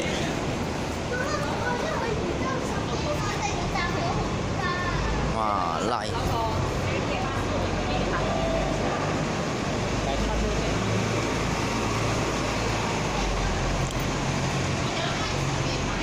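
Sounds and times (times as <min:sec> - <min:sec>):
bus engine running: 0:00.0 - 0:16.0.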